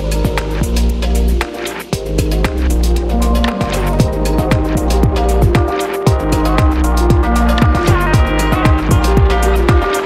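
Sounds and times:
electronic music with deep bass: 0.0s - 10.0s.

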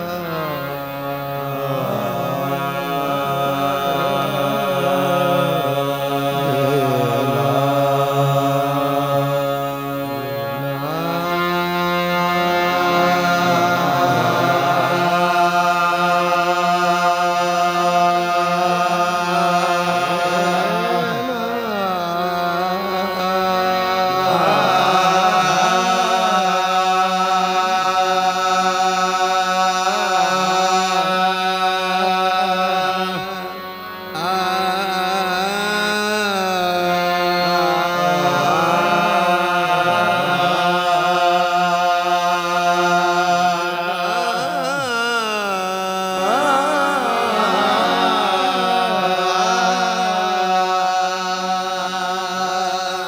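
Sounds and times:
harmonium drone: 0.0s - 53.0s
man singing ornamented line: 0.0s - 53.0s.

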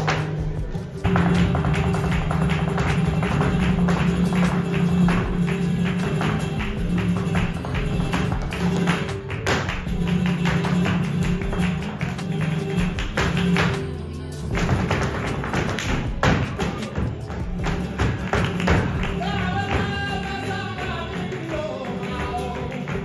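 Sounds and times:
footwork stamping on wooden stage: 0.0s - 23.0s
guitar: 0.0s - 23.0s
rhythmic hand-clapping: 0.0s - 23.0s
person singing: 18.9s - 23.0s.

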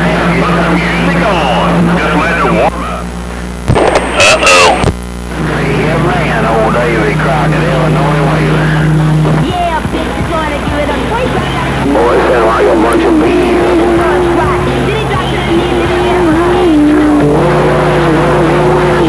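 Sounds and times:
garbled radio voices: 0.0s - 19.0s
radio static: 0.0s - 19.0s.

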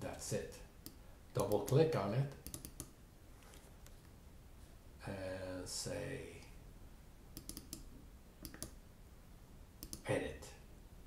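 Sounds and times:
computer mouse clicking: 0.8s - 2.9s, 7.4s - 8.8s, 9.8s - 10.0s.

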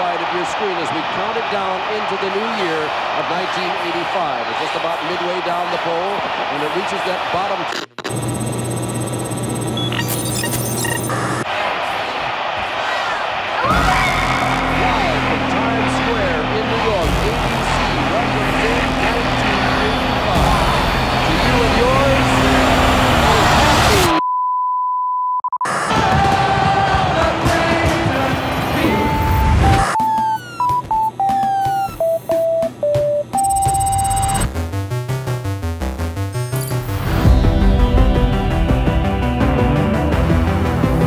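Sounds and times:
crowd shouting and cheering: 0.0s - 8.8s, 11.0s - 24.2s, 25.6s - 30.8s
electronic beeps: 7.8s - 11.4s, 28.6s - 34.5s, 36.4s - 37.2s
music: 13.7s - 24.1s, 25.9s - 41.0s
single-pitch test tone: 32.0s - 34.4s.

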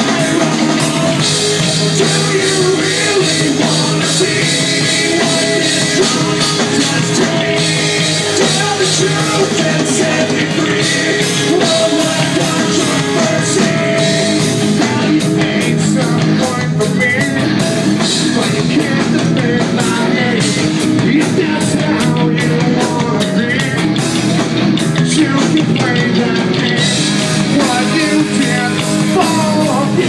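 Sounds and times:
man singing: 0.0s - 24.2s, 24.8s - 30.0s
distorted electric guitar: 0.0s - 30.0s
drum kit: 0.0s - 30.0s.

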